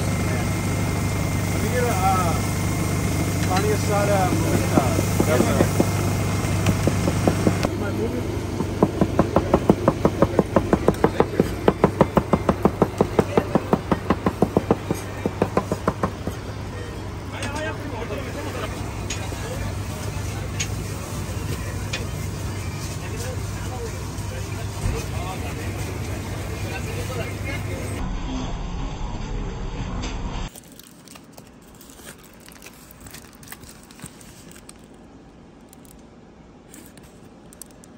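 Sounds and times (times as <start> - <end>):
low engine hum: 0.0 - 30.5
knife chopping meat on board: 6.6 - 7.7, 8.6 - 16.3.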